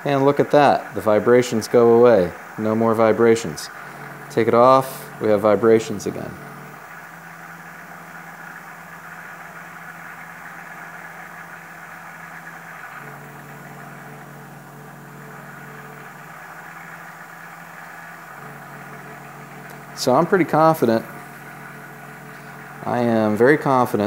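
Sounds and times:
milling machine running: 0:00.0 - 0:24.0
spindle vibrating: 0:00.0 - 0:24.0.

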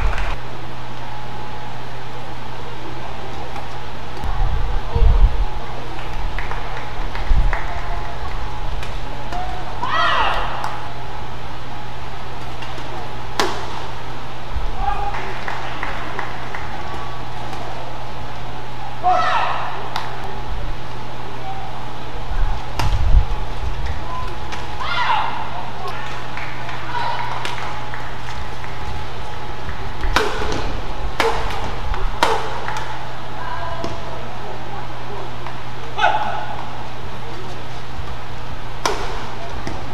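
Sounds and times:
hall noise hum: 0:00.0 - 0:39.9
voices: 0:01.3 - 0:39.9
racket hitting shuttlecock: 0:12.3 - 0:14.0, 0:29.7 - 0:33.1, 0:38.8 - 0:39.9.

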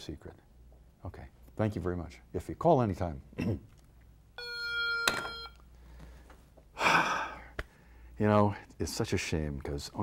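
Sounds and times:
mobile phone beep: 0:04.4 - 0:05.6.

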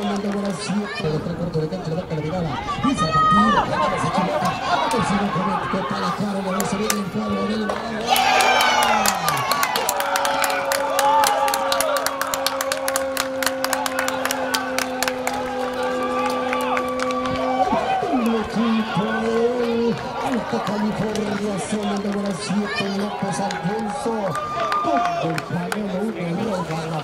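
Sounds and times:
spectators cheering and shouting: 0:00.0 - 0:27.0
rapid sharp claps: 0:07.7 - 0:18.4.

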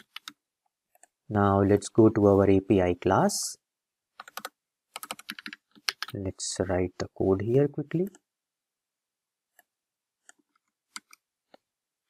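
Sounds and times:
computer keyboard keystrokes: 0:04.2 - 0:06.1.

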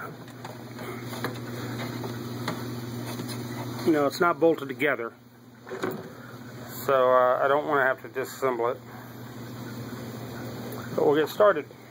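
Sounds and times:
steady low hum: 0:00.0 - 0:11.9.

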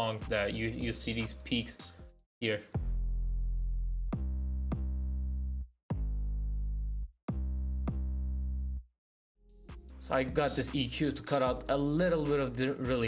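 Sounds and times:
deep bass notes: 0:02.8 - 0:08.8.

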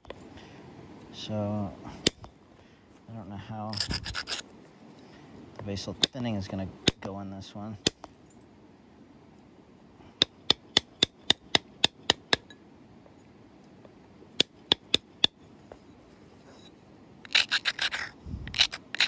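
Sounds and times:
scraping on flint: 0:03.7 - 0:05.3, 0:14.4 - 0:19.0
antler clicking on flint: 0:10.2 - 0:12.4, 0:14.4 - 0:15.4, 0:17.2 - 0:19.0.

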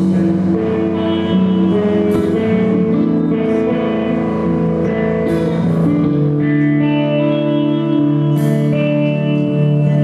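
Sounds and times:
electric guitar sustained chords: 0:00.0 - 0:10.0.

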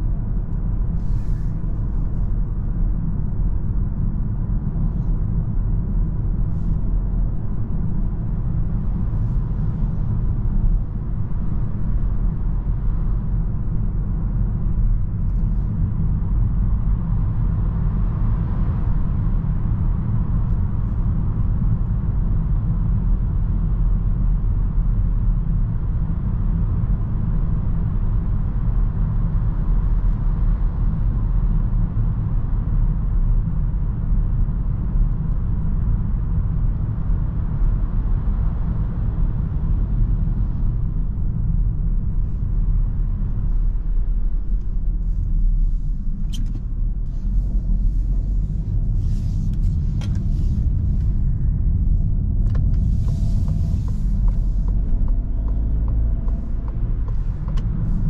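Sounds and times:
car cabin road noise: 0:00.0 - 0:58.0
car engine: 0:36.9 - 0:58.0.

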